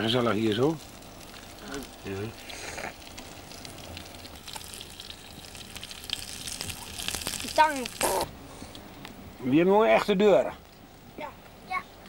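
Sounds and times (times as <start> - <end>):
sausages sizzling in a frying pan: 0.0 - 8.3.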